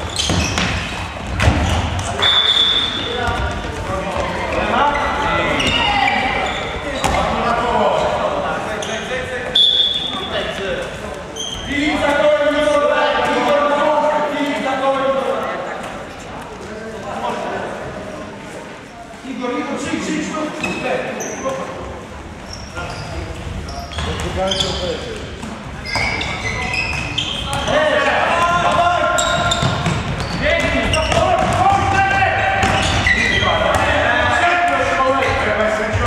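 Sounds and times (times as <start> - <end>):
ball bouncing on court: 0.1 - 2.3, 3.2 - 4.3, 7.0 - 7.3, 28.4 - 34.0
referee's whistle blasts: 2.2 - 3.2, 9.5 - 10.3
players shouting: 27.5 - 36.0.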